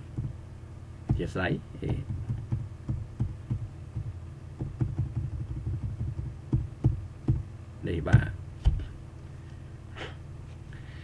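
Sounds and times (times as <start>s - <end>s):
steady low hum: 0.0s - 11.0s
low throbbing thumps: 1.0s - 7.5s.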